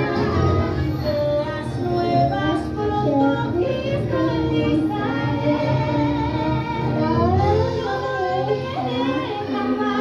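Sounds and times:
girl singing karaoke: 0:00.0 - 0:10.0
karaoke backing track: 0:00.0 - 0:10.0.

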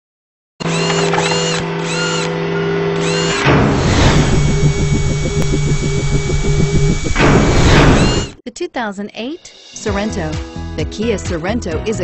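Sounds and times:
pulsing mechanical buzz: 0:00.6 - 0:08.4
steady tone with squeals: 0:01.2 - 0:08.4.

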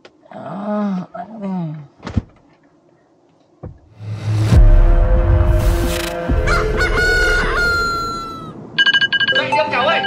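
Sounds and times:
music: 0:04.0 - 0:08.0
rooster crowing: 0:05.9 - 0:08.6.

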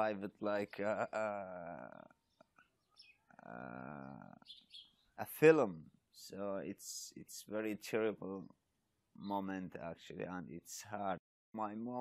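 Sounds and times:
man's drawn-out hesitation vowel: 0:00.0 - 0:02.1, 0:03.4 - 0:04.4.

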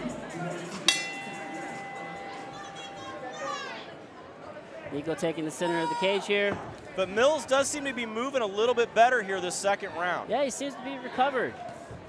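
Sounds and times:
bell ringing: 0:00.9 - 0:03.8.

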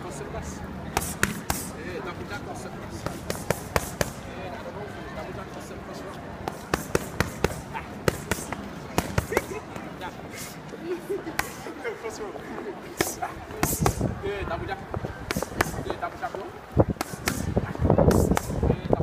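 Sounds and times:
boxing gloves hitting focus mitts: 0:00.9 - 0:01.7, 0:03.0 - 0:04.2, 0:06.4 - 0:09.9, 0:13.0 - 0:14.0, 0:15.3 - 0:16.0, 0:16.9 - 0:17.5.

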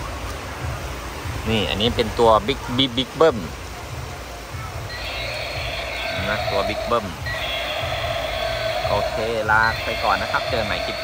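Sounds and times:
low rush of water: 0:00.0 - 0:11.0
electronic buzzy roar effect: 0:04.9 - 0:11.0.

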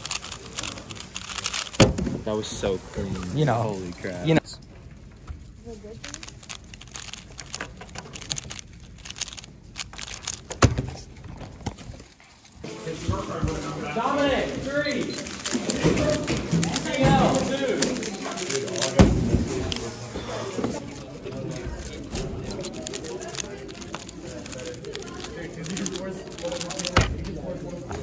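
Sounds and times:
puzzle cube clicking: 0:00.0 - 0:01.9, 0:06.0 - 0:12.0, 0:15.0 - 0:19.0, 0:22.2 - 0:27.3
crowd voices: 0:05.2 - 0:28.0.

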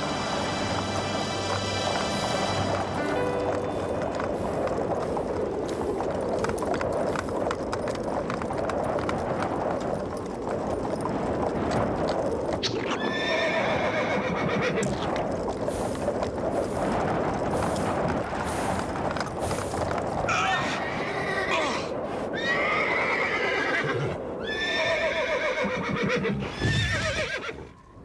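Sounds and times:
hooves clattering: 0:00.0 - 0:28.0
horse neigh: 0:12.6 - 0:15.1, 0:20.3 - 0:27.8.

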